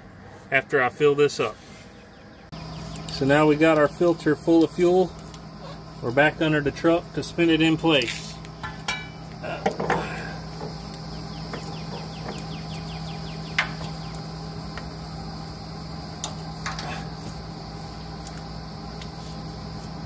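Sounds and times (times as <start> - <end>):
low steady hum: 0.0 - 20.0
insects buzzing: 1.2 - 20.0.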